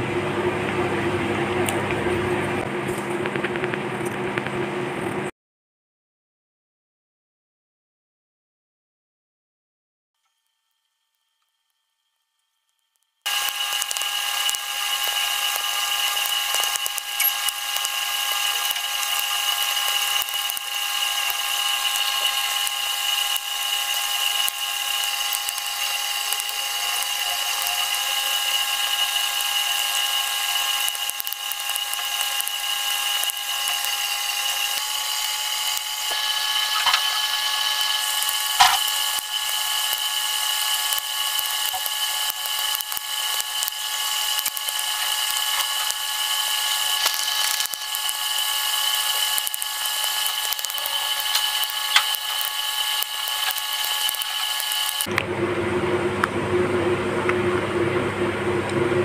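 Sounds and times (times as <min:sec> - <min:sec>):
high-pitched whine: 0:13.3 - 0:59.0.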